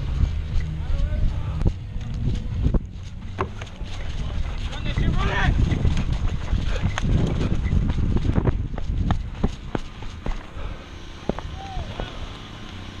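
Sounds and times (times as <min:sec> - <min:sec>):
wind buffeting microphone: 0:00.0 - 0:12.4.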